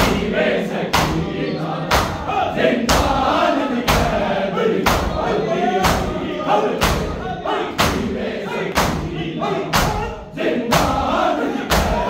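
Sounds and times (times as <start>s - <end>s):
men chanting: 0.0s - 12.0s
hands slapping chests: 0.9s - 1.2s, 1.9s - 2.3s, 8.7s - 9.1s.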